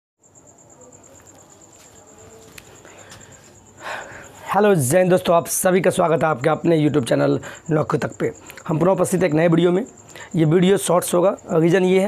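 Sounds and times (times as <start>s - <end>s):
insect trilling: 0.2s - 12.0s.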